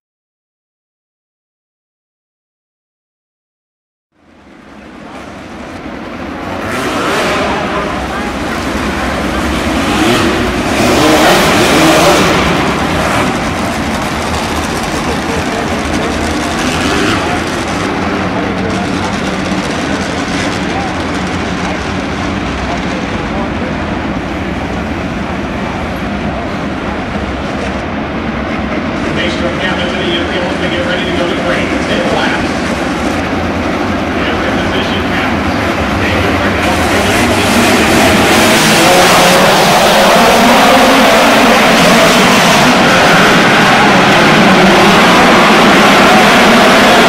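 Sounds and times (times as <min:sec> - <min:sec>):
race car engines droning: 0:04.2 - 0:47.0.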